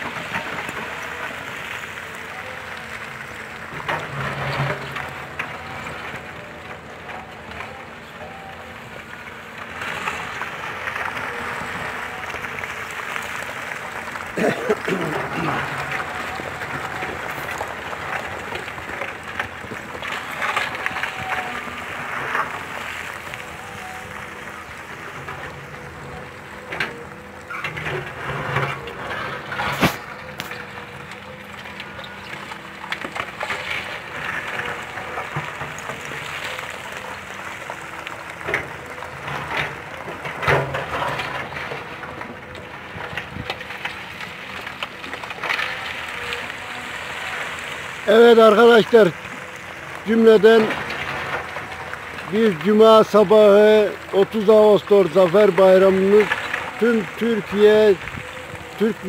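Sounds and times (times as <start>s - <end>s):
excavator engine running: 0.0s - 59.0s
rocks clattering against bucket: 9.1s - 23.6s, 24.3s - 59.0s
sharp crack: 29.1s - 31.8s.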